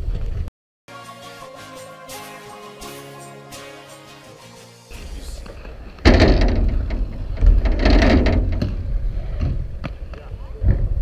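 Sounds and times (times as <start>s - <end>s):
bike wheels rolling and knocking: 5.4s - 11.0s
wind buffeting microphone: 6.1s - 11.0s.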